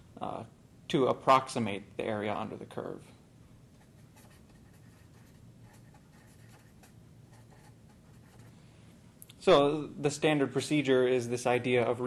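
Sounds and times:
marker writing on paper: 3.8s - 8.5s.

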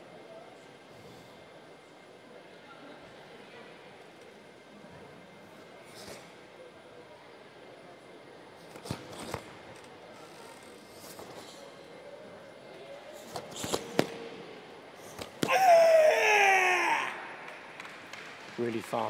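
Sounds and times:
person shouting: 15.4s - 17.5s.

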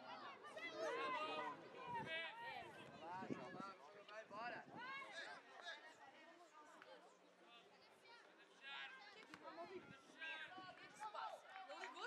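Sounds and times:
people shouting and calling out: 0.0s - 3.5s.

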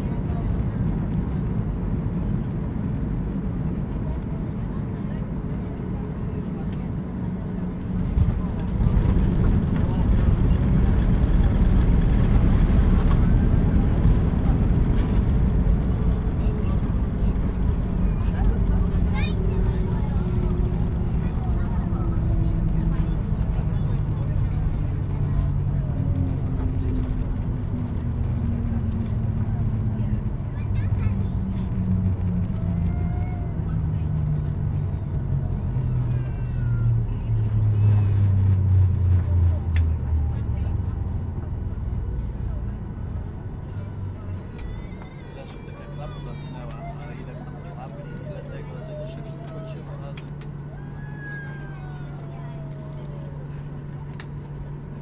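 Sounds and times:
jet and airflow noise: 0.0s - 55.0s
jet engines winding down: 5.4s - 41.8s, 42.4s - 55.0s.

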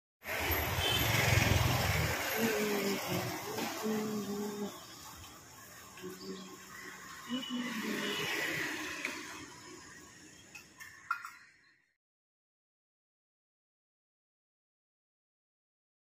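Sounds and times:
traffic engine rumble: 0.3s - 10.6s
people talking: 1.9s - 4.8s, 6.0s - 8.7s.

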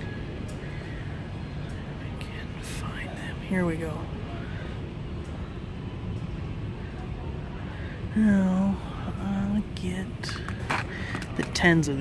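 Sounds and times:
indoor store background rumble: 0.0s - 12.0s.

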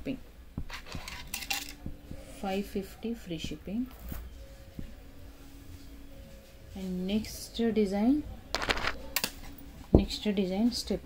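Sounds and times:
bead necklace clinking: 8.5s - 9.5s.

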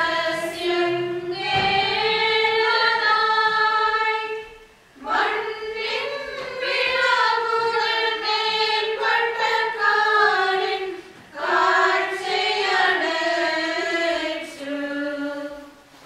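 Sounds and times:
choir chanting: 0.0s - 15.8s.

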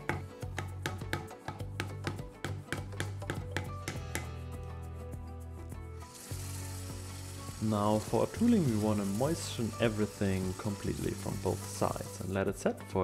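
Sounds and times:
mallet tapping chisel into leather: 0.0s - 4.4s
background music with bass line: 0.0s - 13.0s
running tap hissing: 6.0s - 12.3s.

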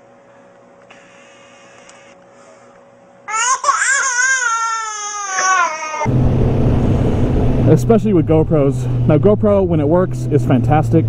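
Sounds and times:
infant crying: 3.3s - 6.1s
motorcycle engine drone: 6.1s - 11.0s.

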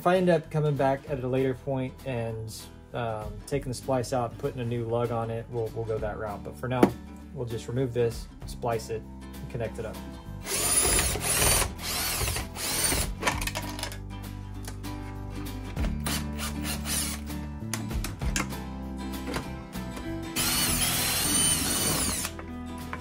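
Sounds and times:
cordless drill spinning screws: 10.4s - 13.2s, 16.0s - 17.3s, 20.4s - 22.4s.

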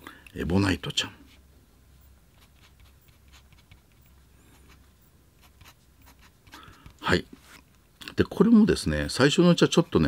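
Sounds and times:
fountain pen scratching on paper: 2.3s - 4.8s, 5.4s - 7.0s.

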